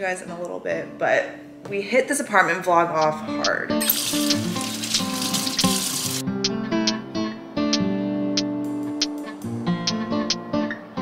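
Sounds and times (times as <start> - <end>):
background music: 0.0 - 11.0
faucet water running: 3.8 - 6.2.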